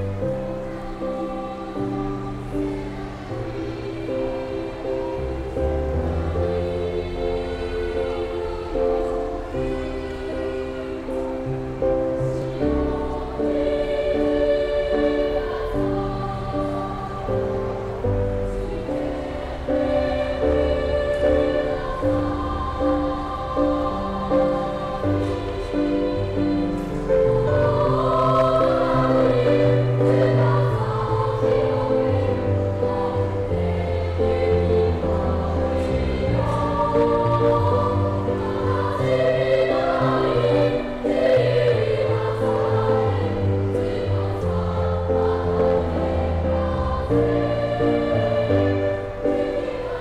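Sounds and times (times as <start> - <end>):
children's choir singing: 0.0 - 50.0
low accompanying notes: 0.0 - 50.0.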